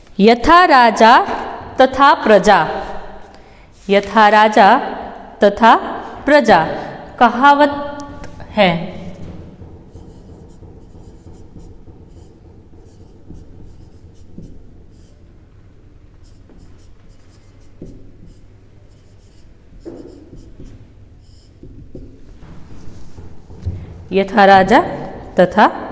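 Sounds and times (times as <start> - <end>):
low room hum: 0.0 - 25.9
marker pen writing on whiteboard: 8.0 - 23.7.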